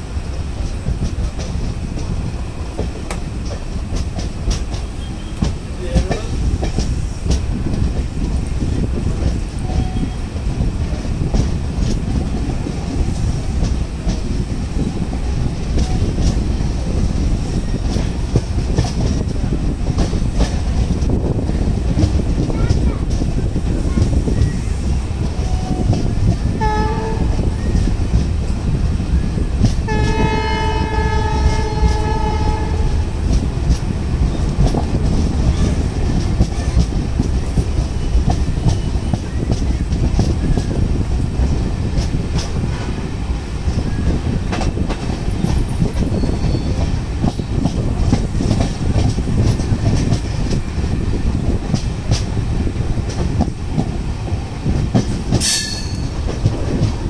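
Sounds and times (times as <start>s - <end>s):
train rumble and wheel clatter: 0.0s - 57.0s
locomotive horn: 26.6s - 27.5s, 29.9s - 33.1s.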